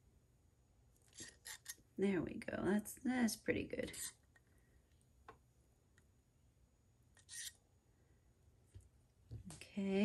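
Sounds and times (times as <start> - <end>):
short metal scrape: 7.2 - 7.6.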